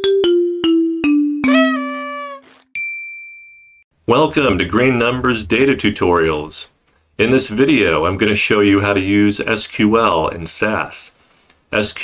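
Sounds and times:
descending jingle notes: 1.4 - 2.6.

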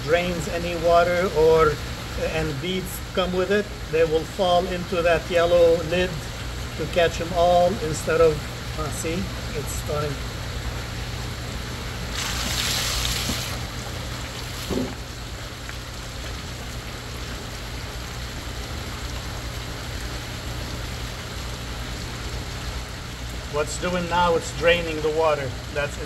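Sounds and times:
water hiss: 12.0 - 15.9
water splashing onto gravel: 12.1 - 17.5.

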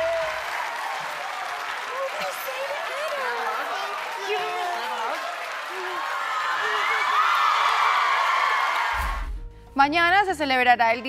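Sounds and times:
audience applauding and cheering: 0.0 - 9.4.

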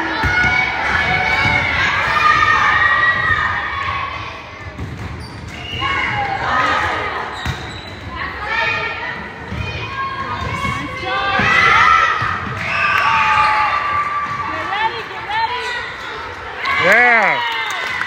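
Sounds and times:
girls calling and shouting: 8.1 - 18.0.

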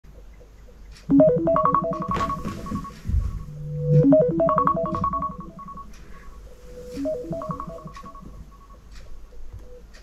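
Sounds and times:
phone alarm melody: 1.1 - 8.9.

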